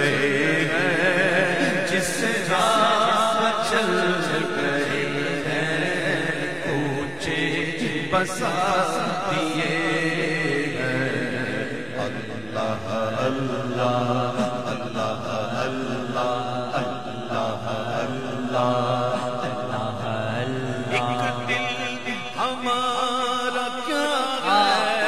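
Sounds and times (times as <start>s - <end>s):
man chanting into a microphone: 0.0s - 25.0s.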